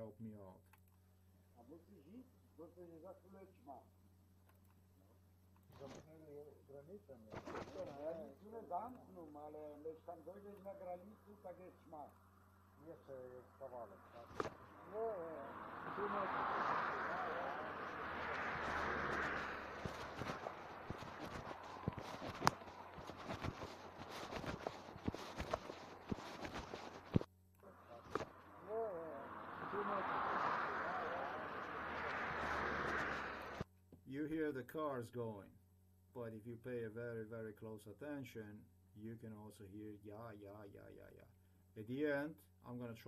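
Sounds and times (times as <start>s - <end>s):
cars passing: 10.2s - 33.6s
faint voices: 12.8s - 25.5s, 27.6s - 31.9s.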